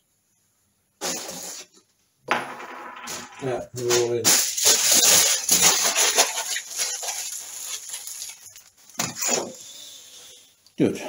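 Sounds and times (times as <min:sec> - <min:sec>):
aluminium foil crinkling: 0:04.0 - 0:09.7.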